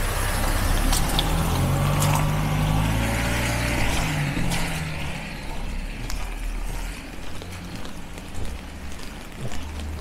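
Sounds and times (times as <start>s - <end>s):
car engine rumble: 0.0s - 10.0s
rain drops ticking: 0.2s - 10.0s.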